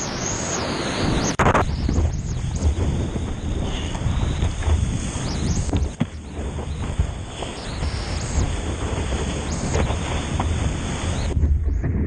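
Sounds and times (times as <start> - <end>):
water rushing and spraying: 0.0 - 11.4
wind buffeting microphone: 0.4 - 12.0.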